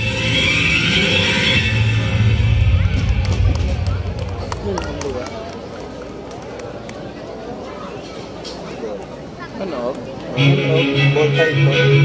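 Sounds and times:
loud stage music with bass: 0.0s - 4.1s, 10.4s - 12.0s
audience chatter: 0.0s - 12.0s.

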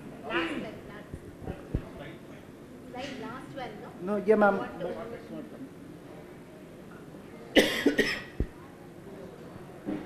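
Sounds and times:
person coughing: 7.6s - 8.5s.

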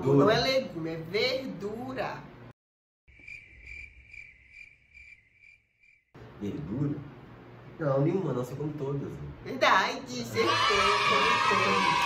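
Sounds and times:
cricket chirping: 3.1s - 6.1s.

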